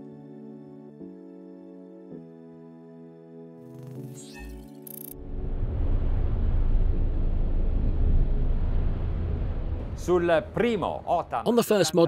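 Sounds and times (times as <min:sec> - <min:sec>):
diesel engines low rumble: 0:05.2 - 0:11.4.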